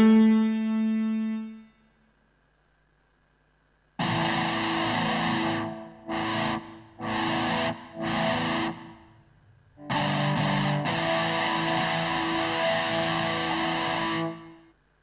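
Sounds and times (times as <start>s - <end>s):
distorted guitar synth chords: 0.0s - 1.7s, 4.0s - 14.7s.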